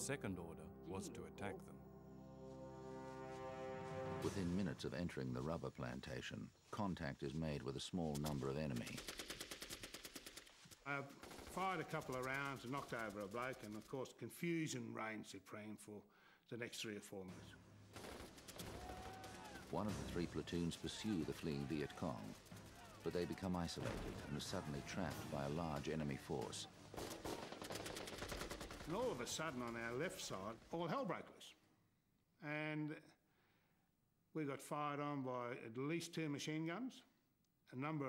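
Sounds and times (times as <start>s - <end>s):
automatic gunfire: 11.2s - 13.7s, 17.9s - 20.9s, 26.9s - 30.2s.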